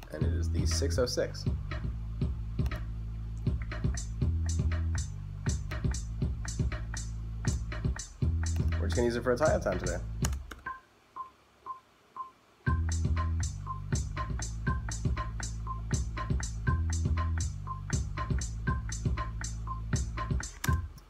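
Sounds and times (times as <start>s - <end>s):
drum machine beat: 0.0s - 21.0s
drum machine hi-hats ticking: 0.0s - 21.0s
metronome ticking: 0.0s - 21.0s
deep synth bass line: 0.2s - 10.3s, 12.7s - 20.4s.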